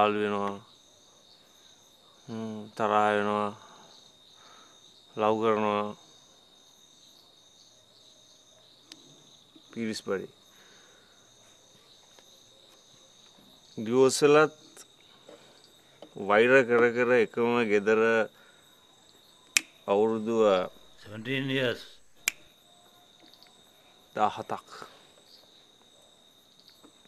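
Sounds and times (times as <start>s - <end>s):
crickets chirping: 0.0s - 27.0s
person speaking: 19.9s - 22.4s.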